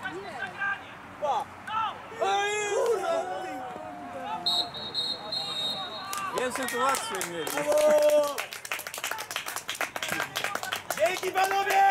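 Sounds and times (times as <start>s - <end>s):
people clapping: 6.0s - 11.9s.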